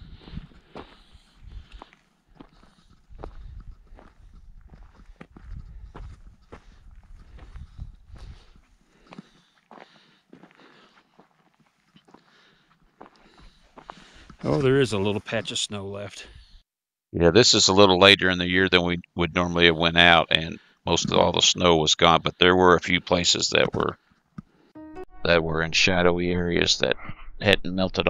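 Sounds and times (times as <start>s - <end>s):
footsteps on gravel: 0.2s - 15.2s.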